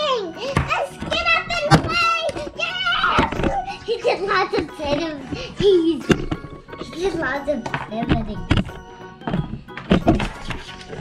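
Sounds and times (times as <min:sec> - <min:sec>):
background music: 0:00.0 - 0:11.0
plastic toys knocking on wood: 0:00.5 - 0:03.6, 0:04.2 - 0:10.6.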